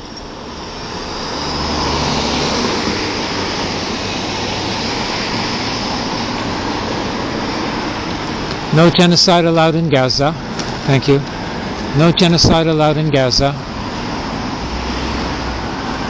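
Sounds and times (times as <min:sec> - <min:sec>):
road traffic passing: 0:00.0 - 0:16.0.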